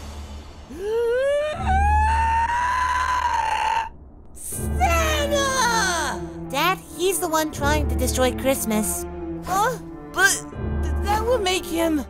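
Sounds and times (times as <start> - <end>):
high-pitched scream: 0.7 - 3.9.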